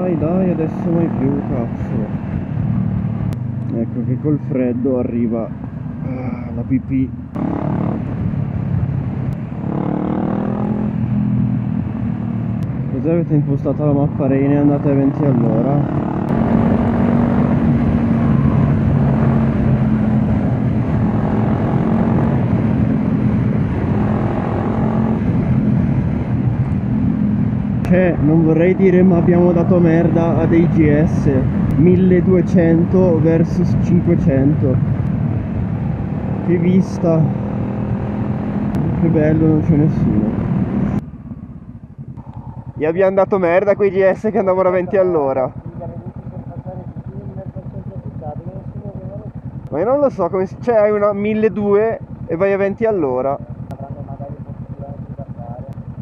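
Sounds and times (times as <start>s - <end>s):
motorcycle engine cruising: 0.0s - 56.0s
wind rushing over microphone: 15.7s - 43.2s
motorcycle engine idling: 41.0s - 56.0s.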